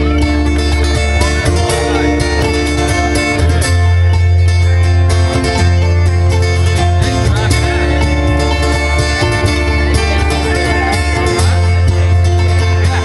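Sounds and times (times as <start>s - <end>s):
acoustic guitar strumming: 0.0s - 13.0s
banjo picking: 0.0s - 13.0s
electric bass notes: 0.0s - 13.0s.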